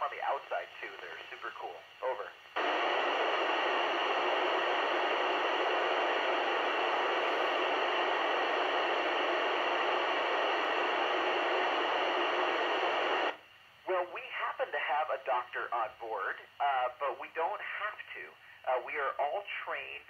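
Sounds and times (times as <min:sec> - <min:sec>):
radio receiver hissing: 0:00.1 - 0:13.4.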